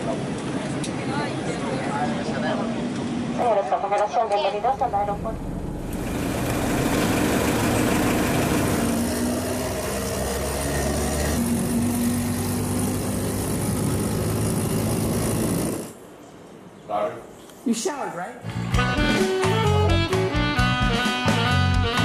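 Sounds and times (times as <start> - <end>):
road and wind noise: 0.0 - 16.7
vehicle engine rumble: 4.4 - 16.0.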